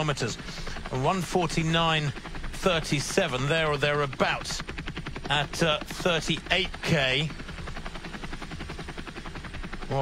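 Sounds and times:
helicopter rotor blades beating: 0.0 - 10.0.

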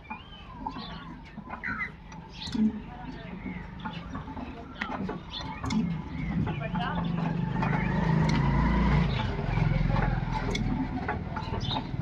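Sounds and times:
diesel engine turning over: 6.1 - 12.0.

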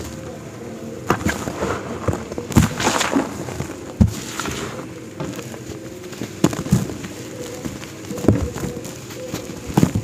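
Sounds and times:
cement chunk cracking: 1.0 - 8.9
gritty crumbs falling: 1.0 - 10.0.

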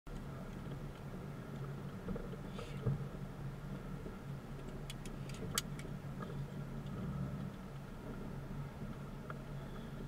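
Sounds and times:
car engine humming: 0.1 - 10.0.

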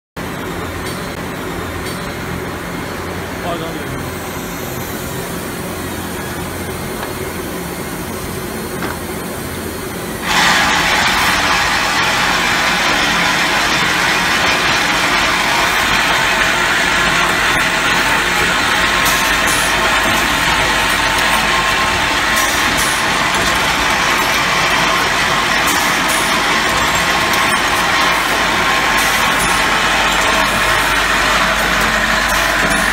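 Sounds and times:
machine mechanical hum: 0.2 - 32.9
loud steady hiss: 3.3 - 32.9.

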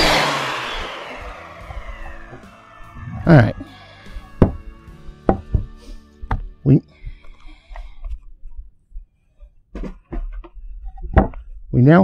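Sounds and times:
wooden boards knocking on table: 4.4 - 4.6, 5.3 - 6.4.

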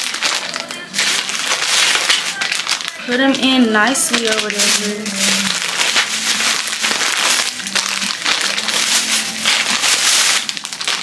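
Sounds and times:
plastic packets crinkling: 0.0 - 11.0.

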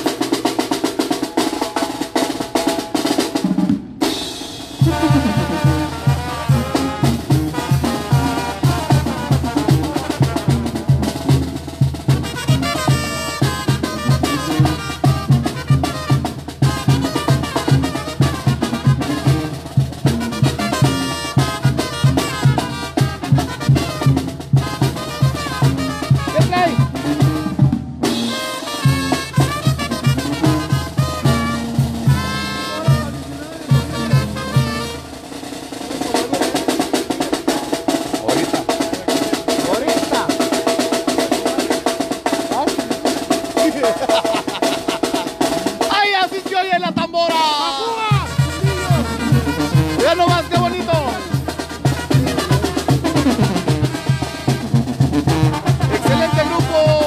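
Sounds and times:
bass drum beat: 0.0 - 57.0
brass band playing: 0.0 - 57.0.

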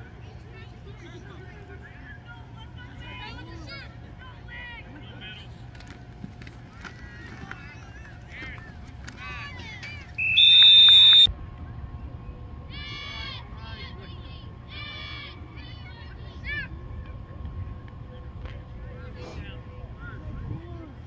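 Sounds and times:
referee's whistle blast: 10.2 - 11.3.

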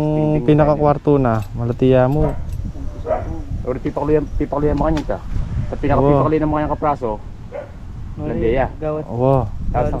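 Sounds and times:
people talking: 0.0 - 7.2, 8.2 - 10.0.

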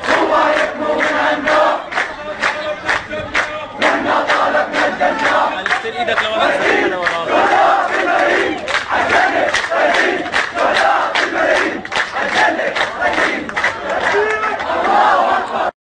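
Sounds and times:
hand clapping: 0.0 - 6.4, 7.0 - 7.3, 7.9 - 14.7
crowd chanting: 0.0 - 15.8.

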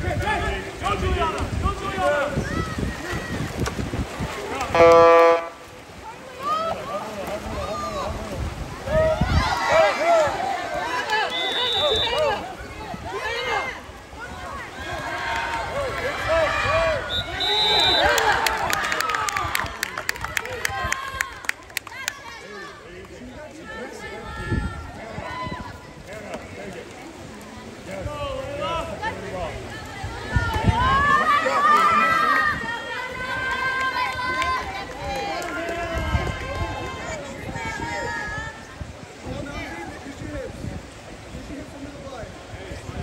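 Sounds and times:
outdoor background noise: 0.0 - 43.0
spectators shouting and cheering: 0.0 - 43.0
people calling out: 4.4 - 22.9
referee's whistle blast: 11.3 - 12.2, 17.1 - 18.2.

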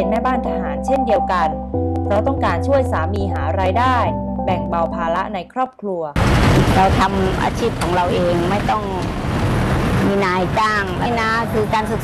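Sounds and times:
woman talking: 0.0 - 9.1, 10.0 - 12.0
road traffic noise: 6.2 - 12.0.

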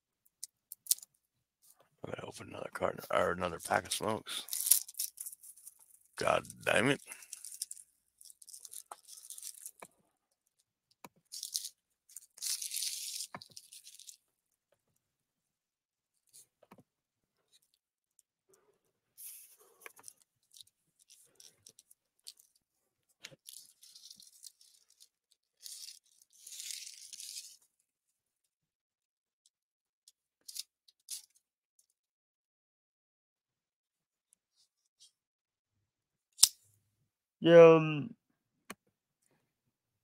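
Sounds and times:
plastic and paper crinkling: 3.1 - 9.8, 11.4 - 14.2, 23.4 - 27.6.

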